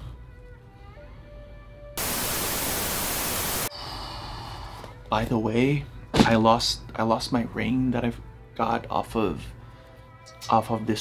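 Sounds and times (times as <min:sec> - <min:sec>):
static hiss: 0:02.0 - 0:03.7.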